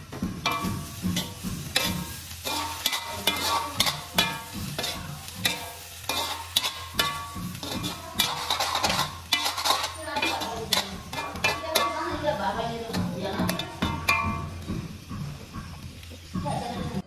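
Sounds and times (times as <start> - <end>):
food sizzling: 0.0 - 17.0
metal ladle scraping a wok: 0.4 - 15.0.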